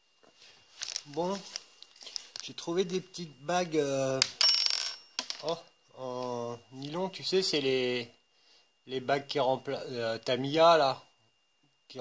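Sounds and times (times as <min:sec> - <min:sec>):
metal washer clinking on workbench: 0:04.2 - 0:05.6.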